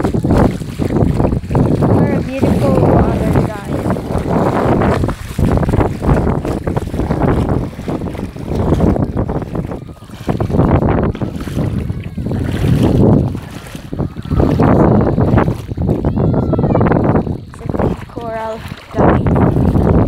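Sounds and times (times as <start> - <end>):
shallow seawater sloshing: 0.0 - 20.0
wind buffeting microphone: 0.0 - 20.0.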